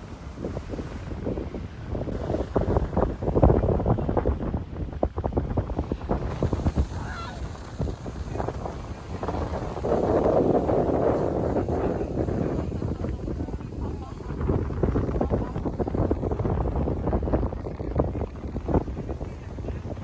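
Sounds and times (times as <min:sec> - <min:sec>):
ocean surf breaking: 0:00.0 - 0:16.9
wind buffeting microphone: 0:00.0 - 0:20.0.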